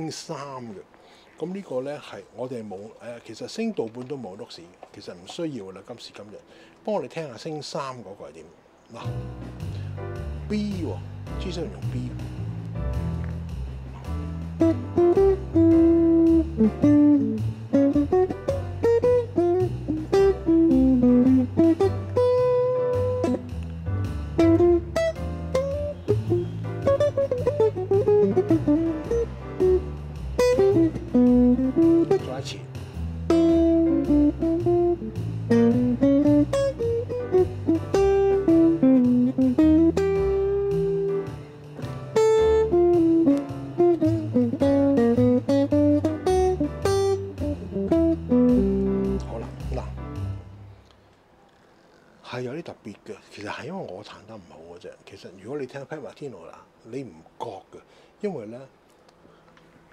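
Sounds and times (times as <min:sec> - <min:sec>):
electric guitar jazz lines: 0:08.9 - 0:50.8
low accompaniment: 0:09.0 - 0:50.8.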